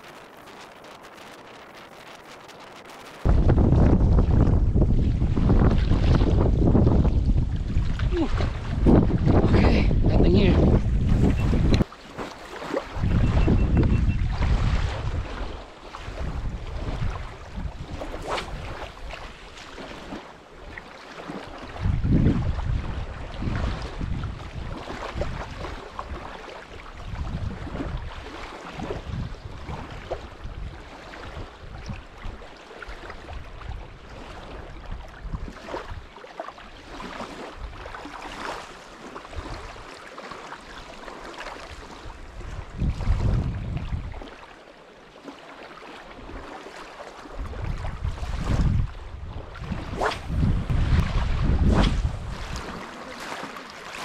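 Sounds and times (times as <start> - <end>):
wind buffeting microphone: 0.0 - 20.8, 21.6 - 32.4, 41.8 - 44.3, 47.3 - 53.4.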